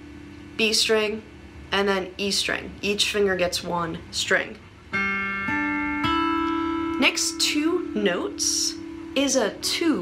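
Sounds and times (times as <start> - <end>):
acoustic guitar fingerpicked notes: 4.9 - 10.0.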